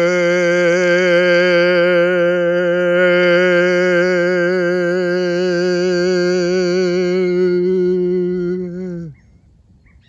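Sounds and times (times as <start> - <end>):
bass voice holding a long note: 0.0 - 9.2.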